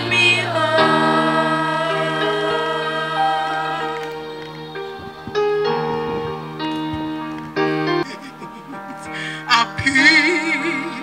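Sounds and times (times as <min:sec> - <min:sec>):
children's choir singing: 0:00.0 - 0:07.3.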